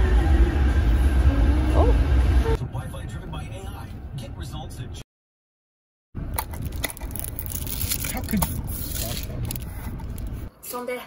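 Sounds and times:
car cabin rumble: 0:01.2 - 0:02.7.

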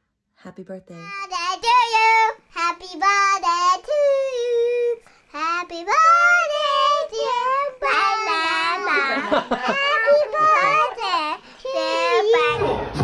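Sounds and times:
child singing: 0:01.1 - 0:13.0.

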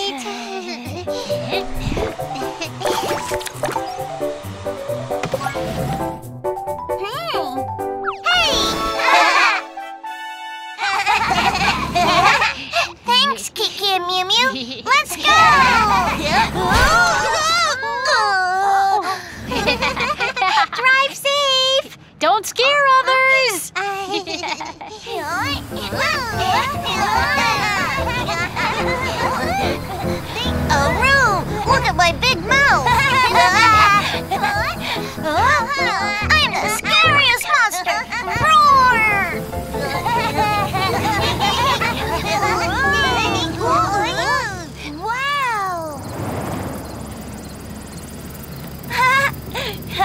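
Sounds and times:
cartoon voices squealing and chattering: 0:14.9 - 0:19.0, 0:25.2 - 0:46.1.

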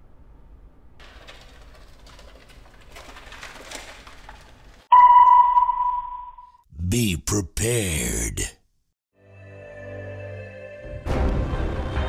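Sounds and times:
high ringing tone sting: 0:04.9 - 0:06.6.

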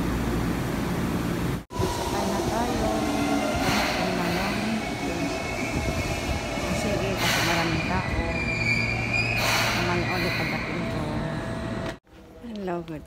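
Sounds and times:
train rumble: 0:00.0 - 0:13.0
train whine and squeal: 0:01.7 - 0:12.4.

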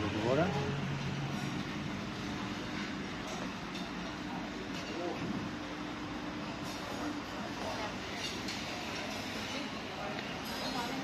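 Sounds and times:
restaurant terrace background noise: 0:00.0 - 0:11.0.

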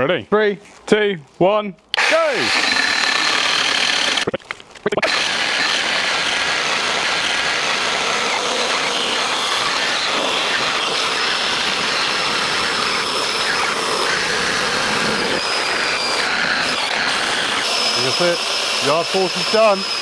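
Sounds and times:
chainsaws cutting wood: 0:02.0 - 0:04.3, 0:05.0 - 0:20.0.

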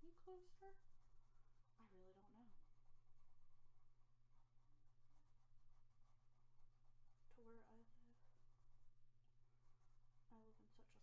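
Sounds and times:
colored pencil scratching on paper: 0:00.0 - 0:11.0
steady low hum: 0:00.0 - 0:11.0
person speaking: 0:07.3 - 0:08.2.

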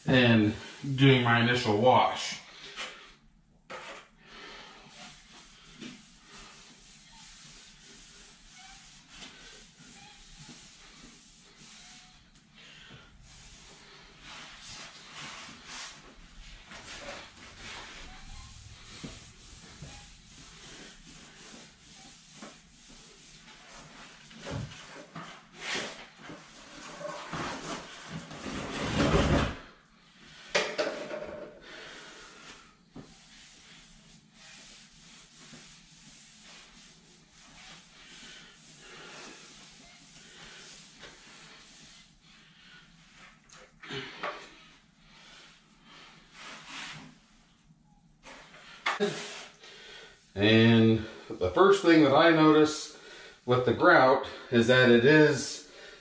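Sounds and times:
sponge rubbing on tile floor: 0:00.1 - 0:56.0.

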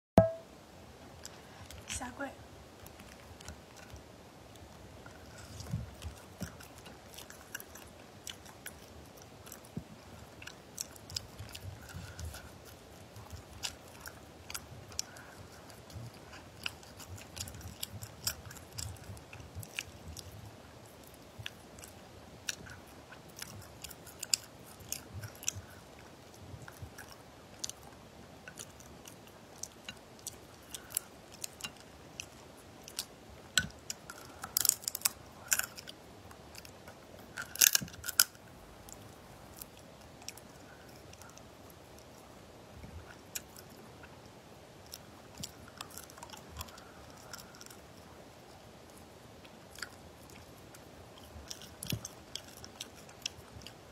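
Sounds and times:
person chewing wetly: 0:02.7 - 0:53.9
shells cracking and clicking: 0:37.4 - 0:38.4.

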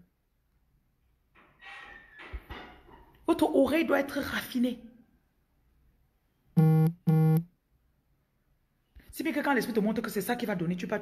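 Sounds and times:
short low electronic buzzes: 0:06.6 - 0:07.4.

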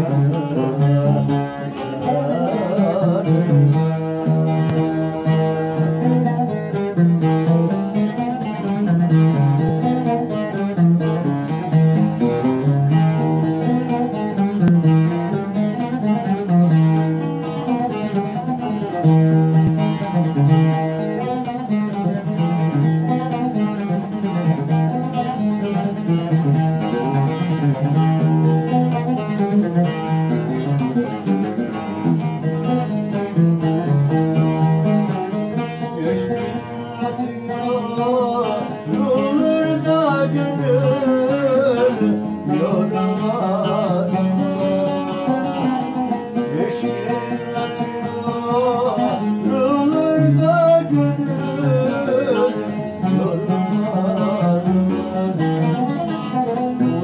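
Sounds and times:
plucked string folk tune: 0:00.0 - 0:57.0.

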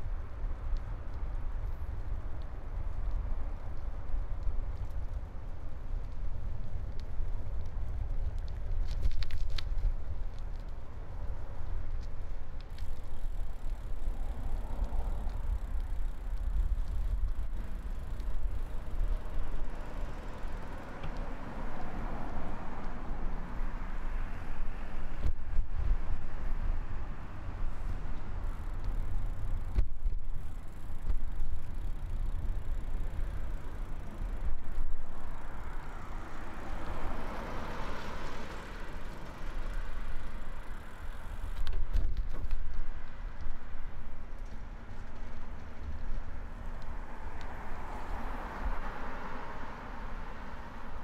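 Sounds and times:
constant low rumble: 0:00.0 - 0:51.0
cars passing: 0:12.7 - 0:41.7, 0:42.8 - 0:51.0.

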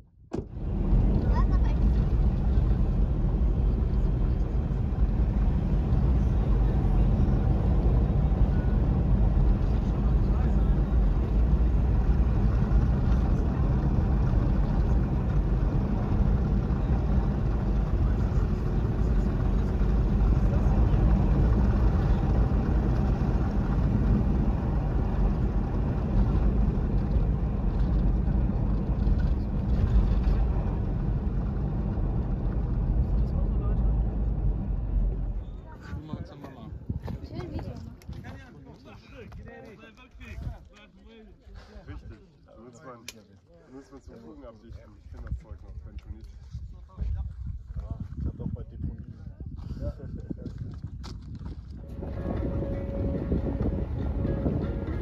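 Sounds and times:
vehicle driving on dirt track: 0:00.1 - 0:39.5, 0:45.1 - 0:55.0.

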